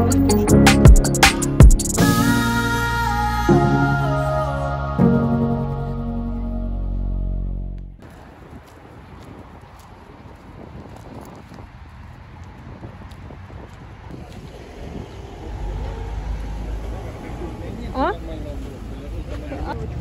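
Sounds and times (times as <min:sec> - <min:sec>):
road traffic hum: 0:07.9 - 0:20.0.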